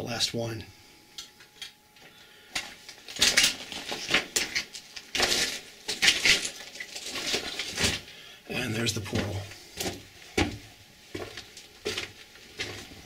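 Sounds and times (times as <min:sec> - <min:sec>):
footsteps on loose rock: 0:09.1 - 0:13.0.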